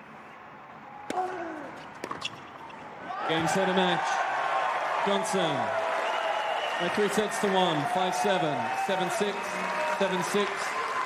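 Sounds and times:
racket striking tennis ball: 1.1s - 2.7s.

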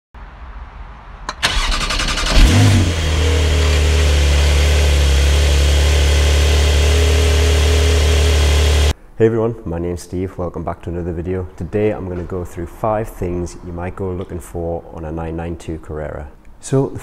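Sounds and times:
ignition click: 1.3s - 2.6s
car starter cranking: 1.3s - 4.3s
car engine idling: 1.4s - 8.9s
car engine revving: 1.4s - 8.9s.

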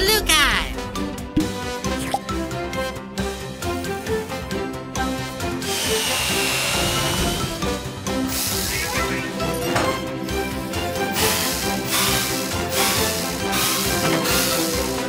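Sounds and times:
children's cartoon music: 0.0s - 15.0s
power drill whirring: 5.6s - 7.7s, 10.3s - 15.0s.

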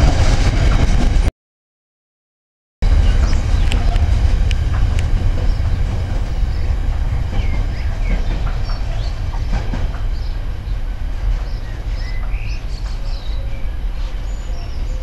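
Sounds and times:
freight train rumbling: 0.0s - 1.3s, 2.8s - 15.0s.

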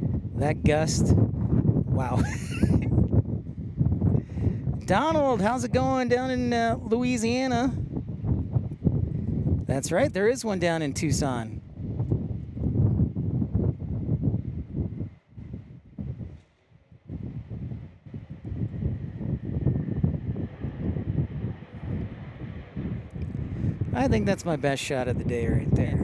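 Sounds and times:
jet engine whine: 0.0s - 26.0s
wind buffeting microphone: 0.0s - 26.0s.

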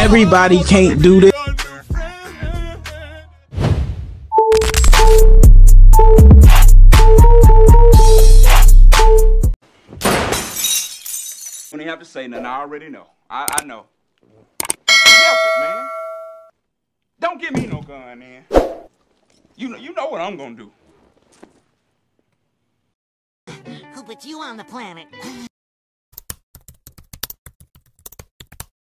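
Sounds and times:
bell-like ding: 14.9s - 16.5s.

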